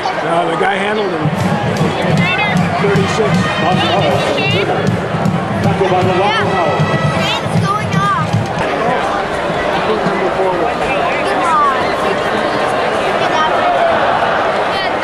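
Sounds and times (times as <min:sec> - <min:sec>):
music playing: 0:00.0 - 0:14.2
crowd shouts: 0:00.0 - 0:15.0
stadium crowd voices: 0:00.0 - 0:15.0.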